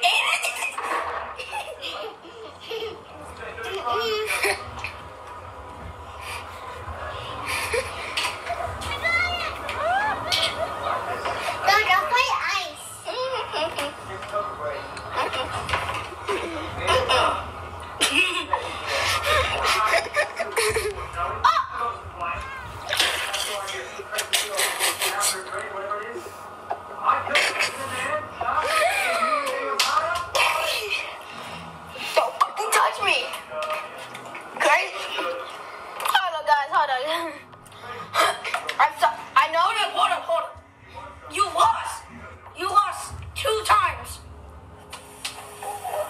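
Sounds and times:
children laughing: 0:00.0 - 0:05.0, 0:06.2 - 0:11.7, 0:13.0 - 0:14.2, 0:15.1 - 0:21.9, 0:28.6 - 0:29.8
children's voices: 0:08.6 - 0:13.9.

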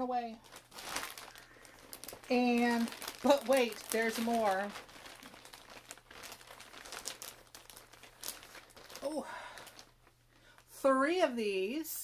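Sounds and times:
plastic bag crinkling: 0:00.1 - 0:10.8.

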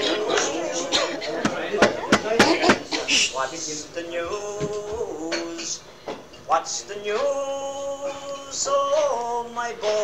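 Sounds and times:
low talk: 0:00.0 - 0:05.0.

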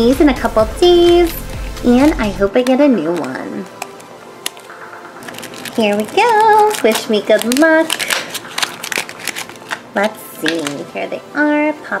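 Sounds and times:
plastic packaging crackling: 0:01.9 - 0:10.9.

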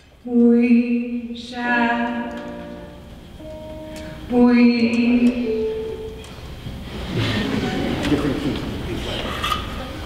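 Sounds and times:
low instruments dense chord: 0:00.8 - 0:09.0.

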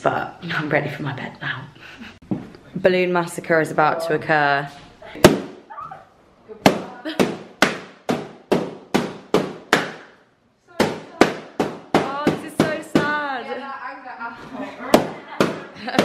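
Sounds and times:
balloons popping: 0:05.2 - 0:06.0, 0:06.6 - 0:13.3.

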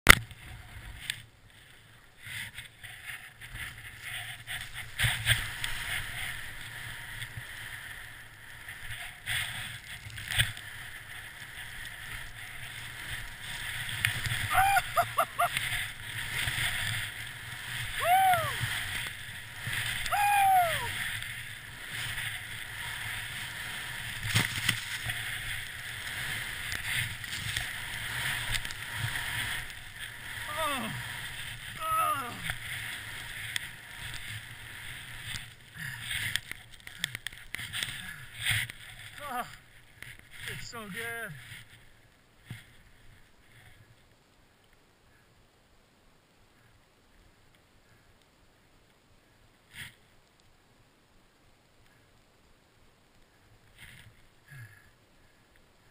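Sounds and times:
skis hissing through powder: 0:01.6 - 0:44.0
person whooping: 0:14.5 - 0:15.6, 0:17.9 - 0:18.8, 0:20.0 - 0:21.0, 0:30.5 - 0:31.0, 0:31.8 - 0:32.5.

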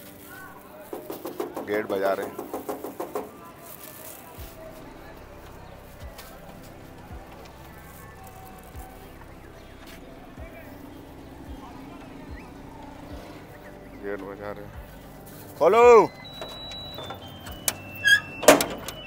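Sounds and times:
hand banging a metal gate: 0:00.9 - 0:03.5, 0:16.4 - 0:19.0
soft low thumps: 0:04.4 - 0:17.6.

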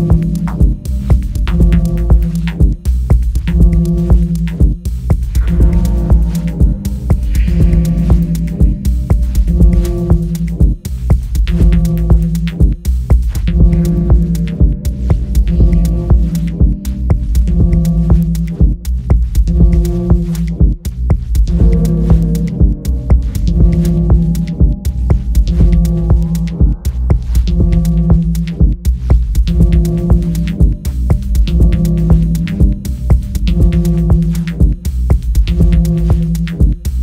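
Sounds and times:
deep sustained bass: 0:00.0 - 0:37.0
steady kick drum: 0:00.0 - 0:37.0
rising filter sweep: 0:05.2 - 0:12.6, 0:21.5 - 0:34.7.

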